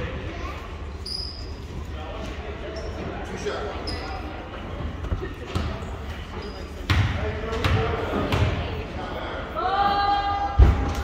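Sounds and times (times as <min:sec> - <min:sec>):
gym chatter: 0:00.0 - 0:11.0
sneaker squeaks: 0:00.9 - 0:01.8, 0:02.6 - 0:04.4, 0:05.5 - 0:07.0.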